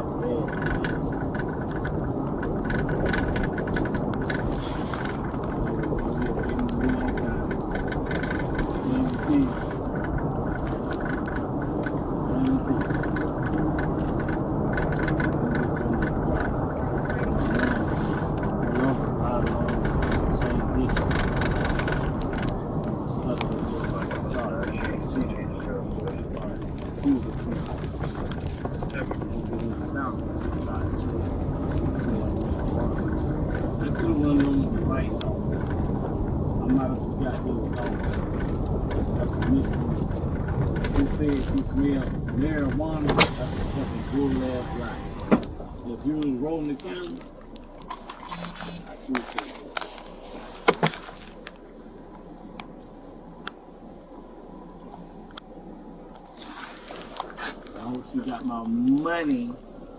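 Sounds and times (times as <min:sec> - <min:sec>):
vehicle running noise: 0:00.0 - 0:59.9
muffled talking: 0:05.4 - 0:07.7, 0:08.6 - 0:09.8, 0:15.2 - 0:21.2, 0:22.5 - 0:31.2, 0:31.9 - 0:35.7, 0:40.9 - 0:47.3, 0:48.2 - 0:49.8, 0:57.7 - 0:59.6.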